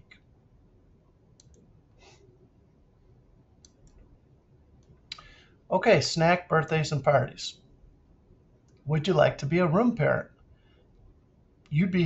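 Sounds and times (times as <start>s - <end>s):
computer mouse clicks: 1.3s - 1.7s.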